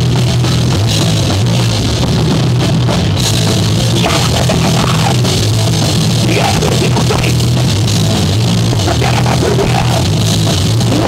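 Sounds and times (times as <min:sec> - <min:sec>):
distorted electric guitars: 0:00.0 - 0:11.0
drum kit pounding: 0:00.0 - 0:11.0.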